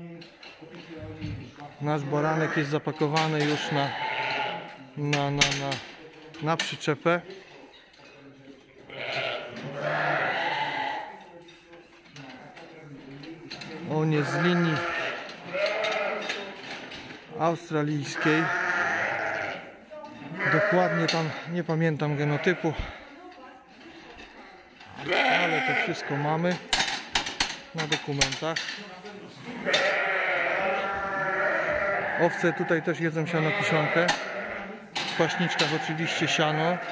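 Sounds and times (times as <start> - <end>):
sheep bleating: 2.1 - 2.8, 3.5 - 4.8, 8.9 - 11.1, 14.1 - 16.3, 18.0 - 19.7, 20.3 - 21.5, 22.1 - 23.0, 25.0 - 26.5, 29.6 - 36.9.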